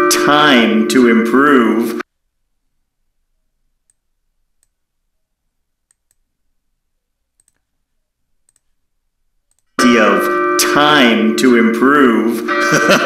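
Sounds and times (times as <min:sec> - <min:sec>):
computer mouse clicks: 0:05.9 - 0:06.3, 0:07.4 - 0:07.7, 0:08.4 - 0:08.8, 0:09.5 - 0:09.8.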